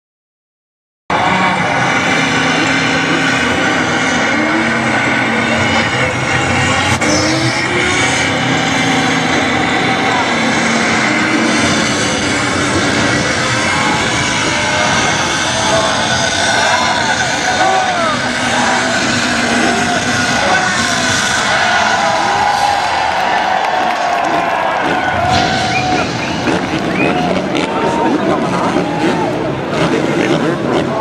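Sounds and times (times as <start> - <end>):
loud racing engine: 1.1 - 31.0
voices: 1.1 - 31.0.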